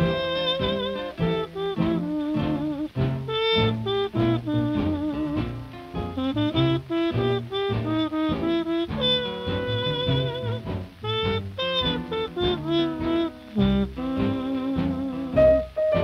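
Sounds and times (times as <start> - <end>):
bass: 0.0 - 16.0
horn melody: 0.0 - 16.0
swing jazz song: 0.0 - 16.0.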